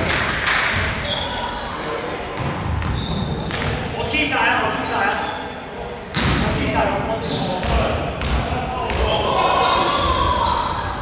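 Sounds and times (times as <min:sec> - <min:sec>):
sneakers squeaking on court: 0:00.2 - 0:06.5, 0:07.2 - 0:10.6
basketball bouncing: 0:02.4 - 0:03.7
players calling out: 0:07.2 - 0:11.0.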